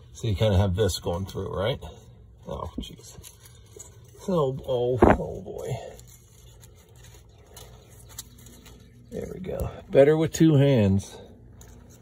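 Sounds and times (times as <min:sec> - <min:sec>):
low steady hum: 0:00.0 - 0:12.0
faint rubbing: 0:03.2 - 0:09.2.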